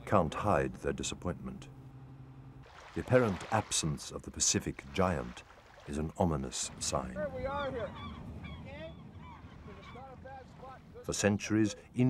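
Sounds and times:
flock of birds honking: 7.3s - 10.8s.

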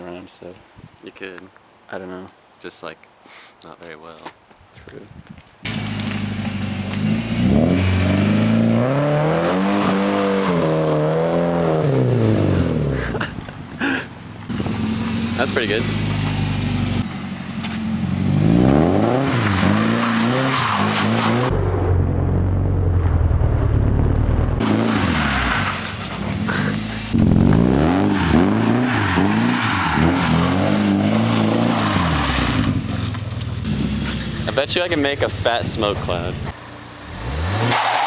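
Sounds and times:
car engine revving: 5.7s - 13.0s, 14.5s - 34.6s, 36.0s - 38.0s.

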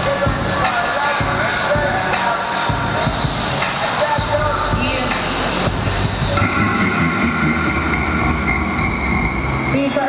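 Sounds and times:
hip-hop dance music: 0.0s - 10.0s
low rumble: 6.1s - 9.8s.

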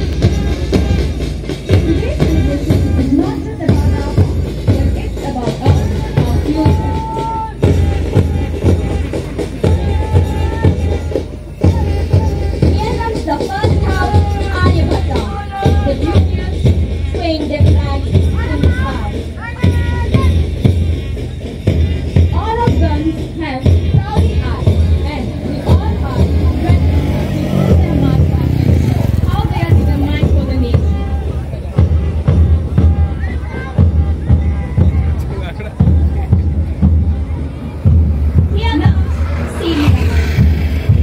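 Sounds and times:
bass drum beating: 0.0s - 41.0s
crowd chatter: 0.0s - 41.0s
march music over loudspeakers: 0.0s - 41.0s.

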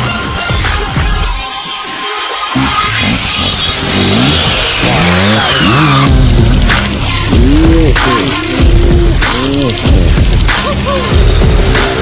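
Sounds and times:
background music: 0.0s - 12.0s
motorcycle engines revving: 2.5s - 12.0s.

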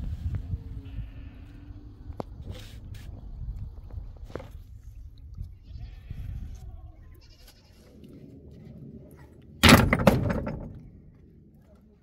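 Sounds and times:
livestock bleating faintly: 0.8s - 1.7s
low rumble: 7.8s - 11.6s.

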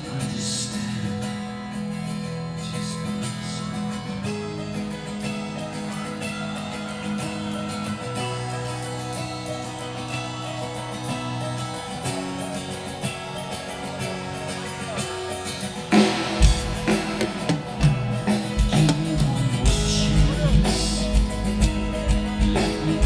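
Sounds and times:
rock band playing slow instrumental: 0.0s - 23.0s
sustained guitar chords: 0.0s - 23.0s.

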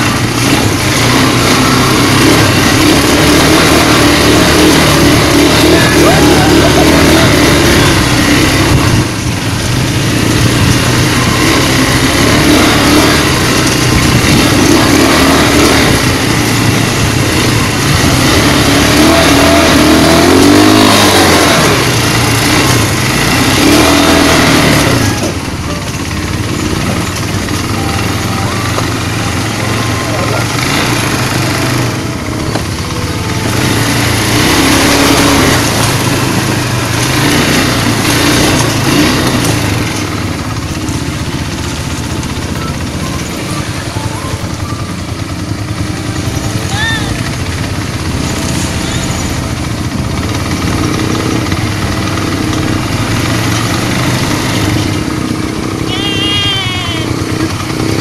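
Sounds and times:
quad bike engines revving: 0.0s - 58.0s.

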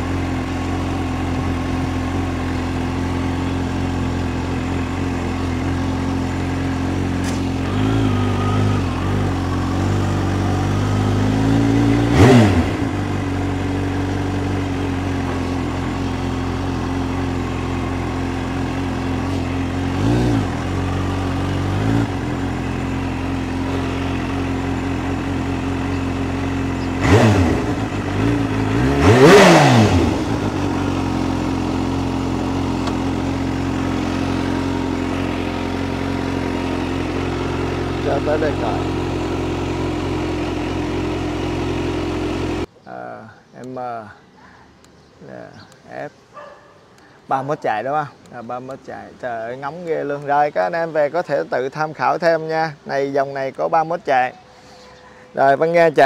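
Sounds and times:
motorcycle engine throttle blips: 0.0s - 43.0s.

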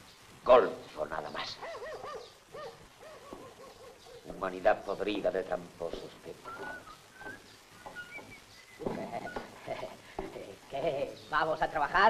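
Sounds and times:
dove cooing: 1.4s - 4.5s, 5.9s - 10.6s.

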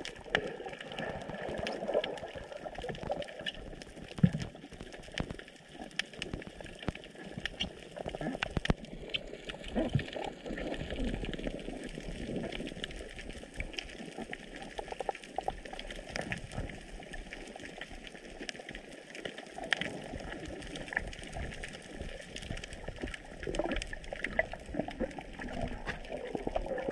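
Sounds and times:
small clicks and crackles: 0.0s - 26.9s
underwater water noise: 0.0s - 26.9s.

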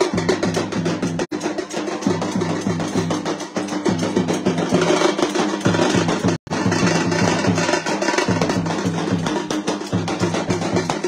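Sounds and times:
drums beaten in fast rhythm: 0.0s - 11.0s.

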